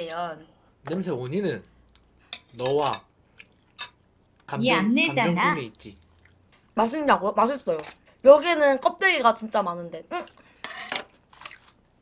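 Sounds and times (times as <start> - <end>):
chopsticks and containers clinking: 1.0 - 6.8.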